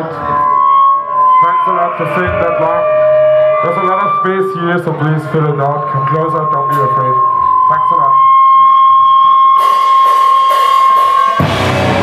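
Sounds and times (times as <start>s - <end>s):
amplifier feedback whine: 0.0s - 12.0s
cymbals washing: 0.0s - 12.0s
rock band playing: 9.5s - 12.0s.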